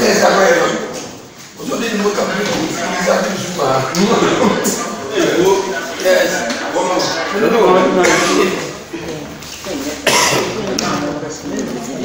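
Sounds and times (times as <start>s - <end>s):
people talking: 0.0s - 12.0s
person coughing: 10.0s - 10.6s.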